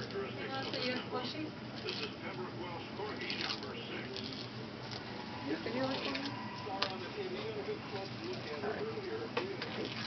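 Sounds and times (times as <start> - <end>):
faint low voices: 0.0 - 10.0.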